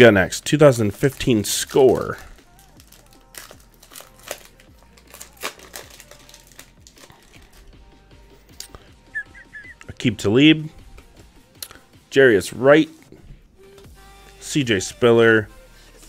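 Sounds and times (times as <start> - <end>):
wrapper crinkling and tearing: 0.9 - 7.7.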